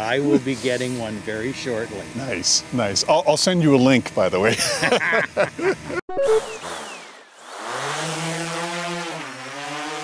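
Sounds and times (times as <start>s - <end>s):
drone propellers buzzing: 6.1s - 10.0s.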